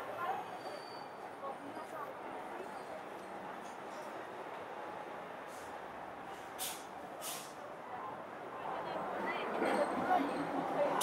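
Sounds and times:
city street traffic: 0:00.0 - 0:11.0
short high hisses: 0:06.6 - 0:07.6.

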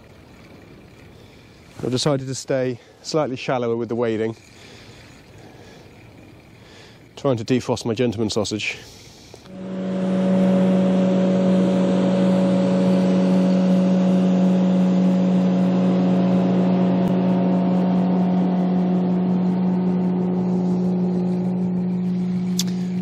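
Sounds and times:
motorboat engine drone: 0:00.0 - 0:01.8, 0:04.4 - 0:07.2, 0:09.2 - 0:23.0.

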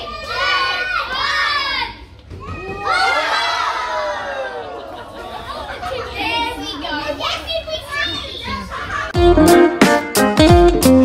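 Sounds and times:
children talking: 0:00.0 - 0:09.2.

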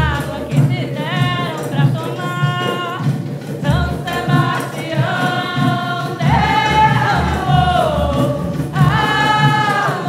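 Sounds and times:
group singing: 0:00.0 - 0:10.0
low drum pulse: 0:06.2 - 0:09.9.

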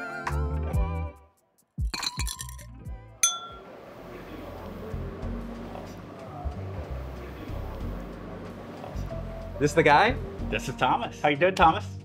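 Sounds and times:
background music: 0:00.0 - 0:12.0
glassware clinking: 0:02.0 - 0:03.7
glass chime ringing: 0:03.2 - 0:03.7.

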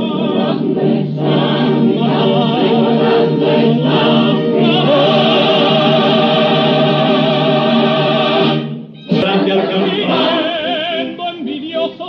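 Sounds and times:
chorus singing with orchestra: 0:00.0 - 0:12.0.

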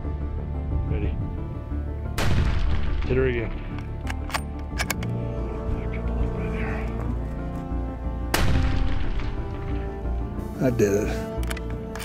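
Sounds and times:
background music with sustained tones: 0:00.0 - 0:12.0
rifle bolt metallic clicks: 0:03.5 - 0:05.2, 0:11.2 - 0:12.0.

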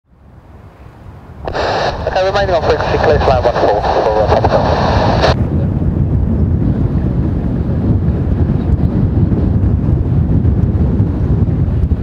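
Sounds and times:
wind buffeting microphone: 0:00.1 - 0:12.0
steady hiss: 0:01.5 - 0:05.4.

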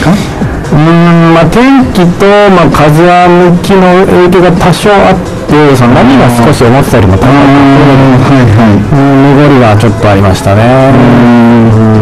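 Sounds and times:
man talking into a microphone: 0:00.0 - 0:12.0.

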